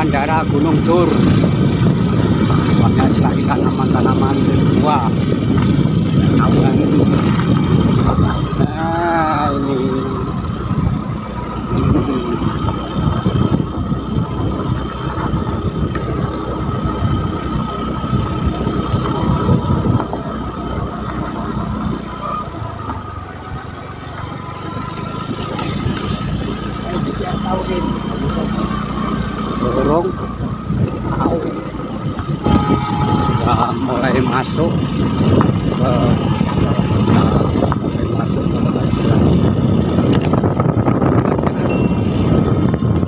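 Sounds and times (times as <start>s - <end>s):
motorcycle engine: 0.0s - 43.0s
road rumble: 0.0s - 43.0s
wind on microphone: 0.0s - 43.0s.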